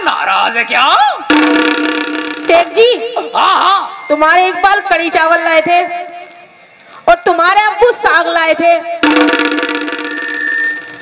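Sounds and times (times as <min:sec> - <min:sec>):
electronic keyboard chord: 0:01.3 - 0:03.0.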